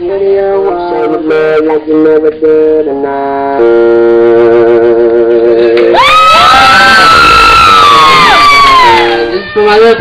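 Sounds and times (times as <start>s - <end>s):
electronic keyboard chord: 0.0s - 5.9s
high voices whooping and cheering: 5.9s - 9.6s.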